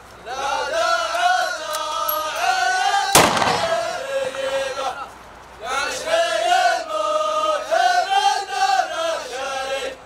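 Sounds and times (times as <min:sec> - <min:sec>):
men chanting a sung poem: 0:00.2 - 0:10.0
loud rifle shot: 0:03.1 - 0:04.3.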